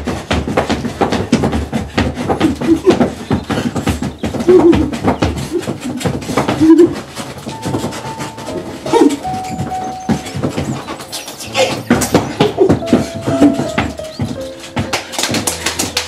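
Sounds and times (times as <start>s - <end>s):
boots stomping rhythmically: 0.0s - 16.0s.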